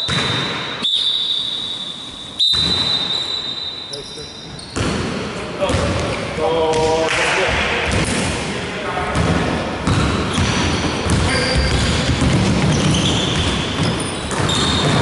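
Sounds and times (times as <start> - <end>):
basketball bouncing on hardwood: 9.2 - 15.0.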